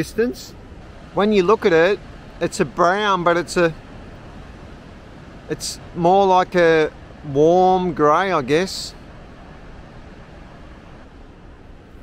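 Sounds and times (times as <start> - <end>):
outdoor background rush: 0.0 - 12.0.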